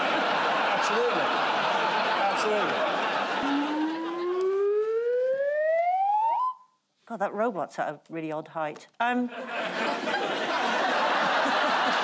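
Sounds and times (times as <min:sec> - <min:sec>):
audience laughter: 0:00.0 - 0:04.6, 0:09.4 - 0:12.0
rising siren-like tone: 0:03.4 - 0:06.7.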